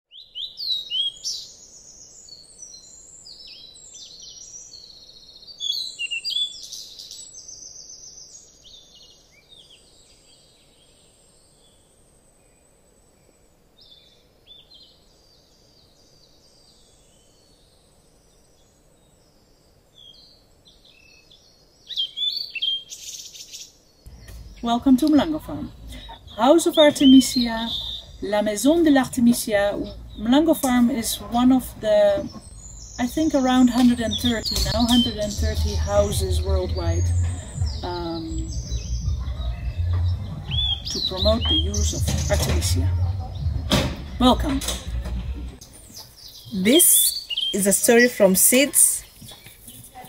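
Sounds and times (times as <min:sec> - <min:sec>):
birds singing and chirping: 0:00.1 - 0:12.0, 0:13.8 - 0:50.0.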